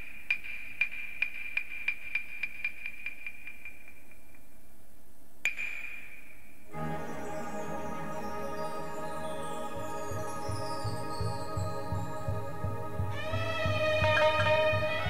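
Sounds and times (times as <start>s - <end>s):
instrumental music: 6.7s - 15.0s.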